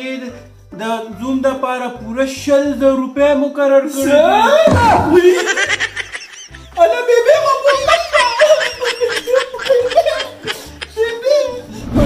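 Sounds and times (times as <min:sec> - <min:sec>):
laughter in quick bursts: 0:07.6 - 0:11.2.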